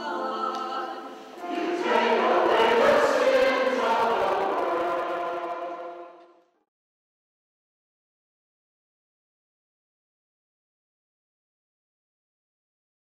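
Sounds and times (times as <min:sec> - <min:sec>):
choir singing: 0:00.0 - 0:06.4.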